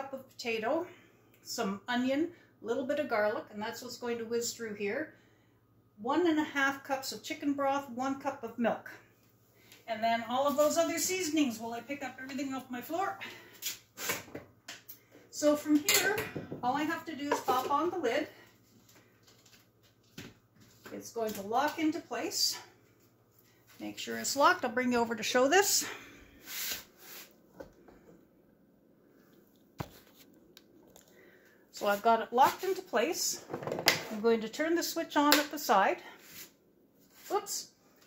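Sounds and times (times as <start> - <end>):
handling noise with rustling: 29.2 - 31.2.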